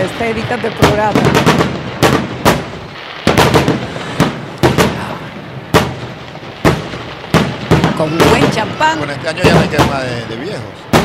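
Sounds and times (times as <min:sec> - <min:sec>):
fireworks cracking: 0:00.0 - 0:11.0.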